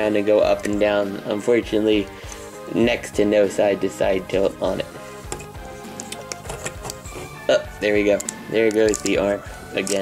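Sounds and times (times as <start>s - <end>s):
background music: 0.0s - 10.0s
small plastic clicks: 8.2s - 9.2s.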